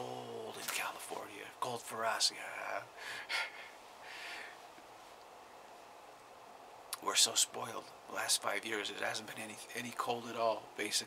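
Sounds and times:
man breathing sharply: 3.0s - 4.6s.

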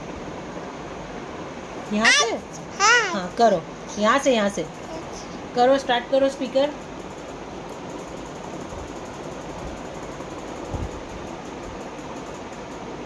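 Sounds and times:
room noise hiss: 0.0s - 13.0s.

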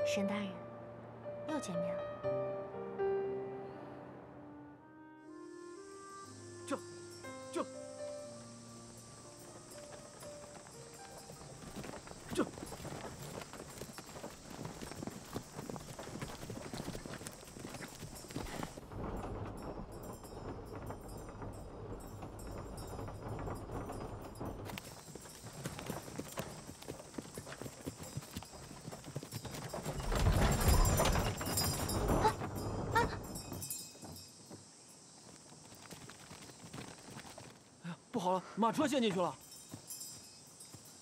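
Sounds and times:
carriage cab rumble: 8.4s - 34.7s
horse hooves clip-clopping: 8.9s - 37.8s, 39.0s - 41.0s.

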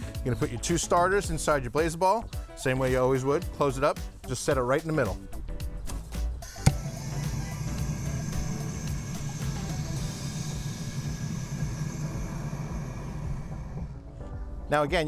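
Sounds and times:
grill torch clicking alight: 5.9s - 14.0s
torch flame hissing: 6.4s - 14.2s.

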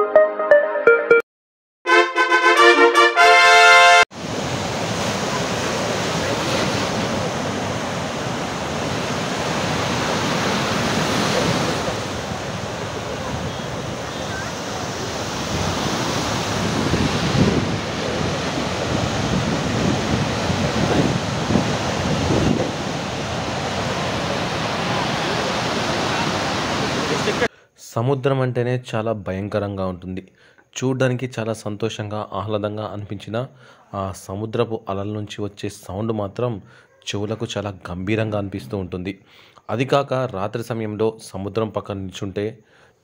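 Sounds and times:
waves breaking on sandy beach: 4.2s - 27.5s.

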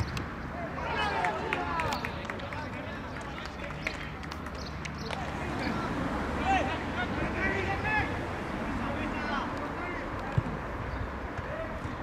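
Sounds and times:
players shouting: 0.5s - 3.6s, 5.2s - 10.5s.

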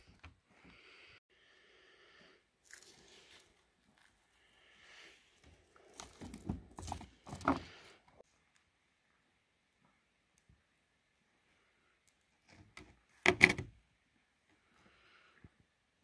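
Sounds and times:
rocks knocking and scraping: 5.9s - 7.8s.

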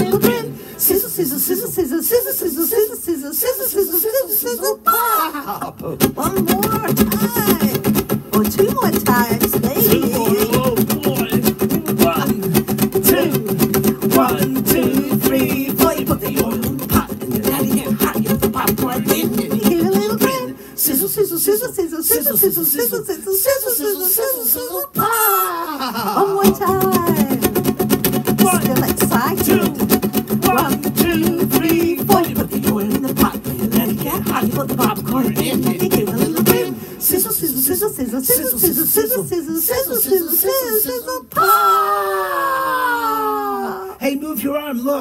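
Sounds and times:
strummed acoustic guitar: 0.0s - 0.9s, 5.8s - 20.8s, 26.4s - 37.3s
children's song singing: 0.0s - 4.8s, 6.4s - 25.4s, 26.2s - 27.6s, 28.4s - 42.4s.

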